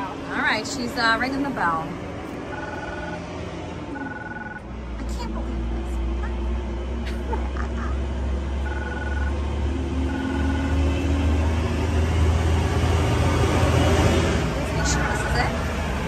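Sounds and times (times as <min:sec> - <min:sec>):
intercom electronic ring tones: 0:02.5 - 0:03.3, 0:03.9 - 0:04.7, 0:08.6 - 0:09.4, 0:10.0 - 0:10.9.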